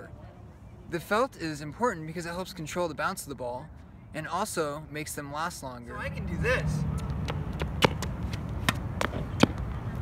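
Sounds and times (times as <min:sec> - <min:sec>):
tennis ball taps: 0:07.2 - 0:09.7.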